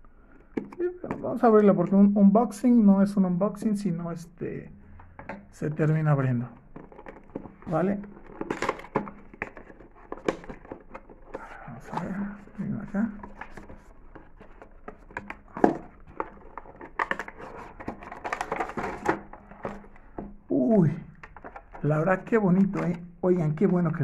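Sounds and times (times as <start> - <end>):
packaging crinkling and clicking: 6.6 - 20.4, 21.1 - 23.8.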